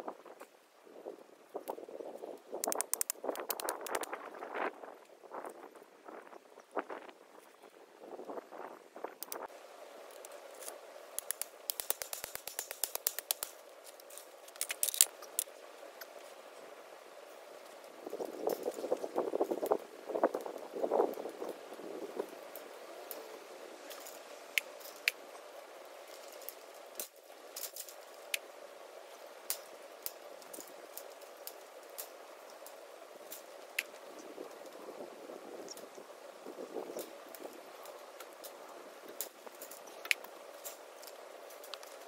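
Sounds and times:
crackling rustling on wire fence: 0.0 - 42.0
clicks and clinks of wire: 2.6 - 4.2, 10.1 - 15.5.

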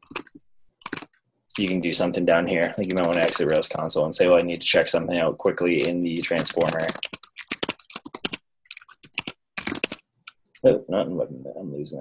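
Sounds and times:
computer keyboard typing: 0.0 - 1.8, 2.7 - 3.7, 5.8 - 10.4.

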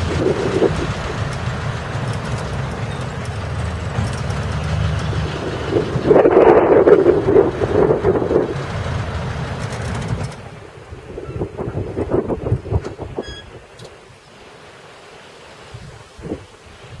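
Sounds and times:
wind rumbling on microphone: 0.0 - 14.2, 15.6 - 17.0.

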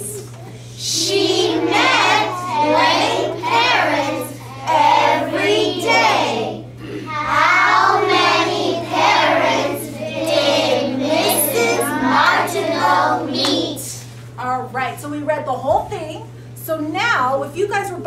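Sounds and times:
steady low hum: 0.0 - 18.0
children chanting in unison: 7.1 - 13.7.

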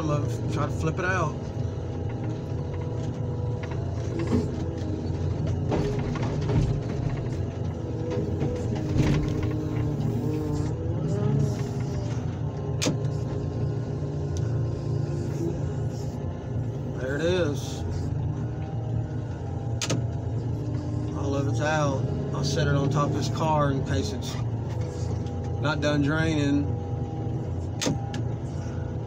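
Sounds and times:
excavator engine running: 0.0 - 29.0
hydraulic whine: 0.0 - 29.0.

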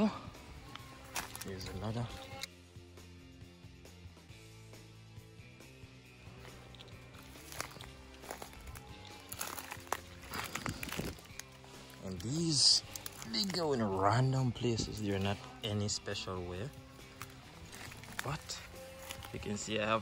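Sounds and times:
music of held low notes: 0.0 - 20.0
footsteps in dry leaves: 1.0 - 1.9, 6.3 - 20.0.

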